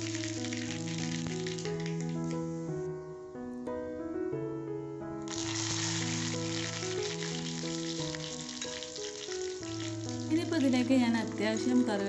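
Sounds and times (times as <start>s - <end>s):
mustard seeds spluttering in hot oil: 0.0s - 2.8s, 5.3s - 11.4s
held keyboard notes: 0.0s - 12.0s.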